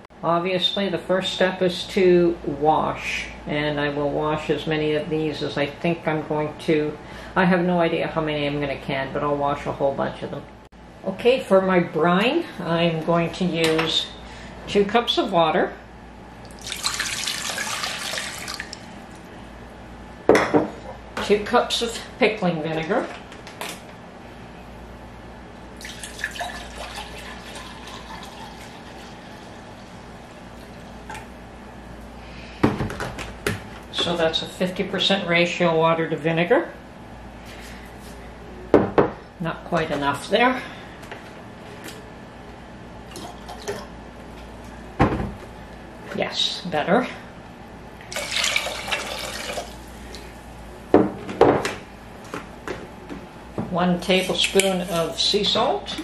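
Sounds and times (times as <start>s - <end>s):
liquid trickling into cup: 16.4s - 19.2s, 25.8s - 29.9s, 48.1s - 49.8s.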